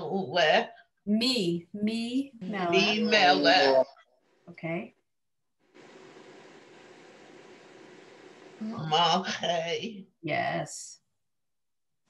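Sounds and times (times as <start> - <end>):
faint room noise hiss: 0.0 - 4.9, 5.6 - 11.0.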